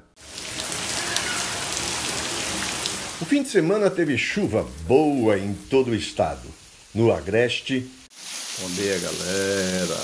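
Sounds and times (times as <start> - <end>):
steady rain on a street: 0.2 - 10.0.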